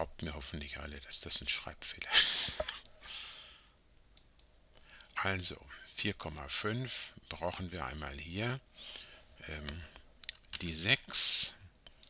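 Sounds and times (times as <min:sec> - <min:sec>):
soft breath out: 0:08.8 - 0:09.4.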